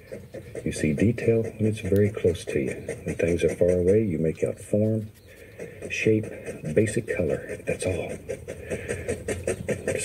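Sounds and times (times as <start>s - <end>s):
man speaking: 0.6s - 5.2s, 5.9s - 8.3s.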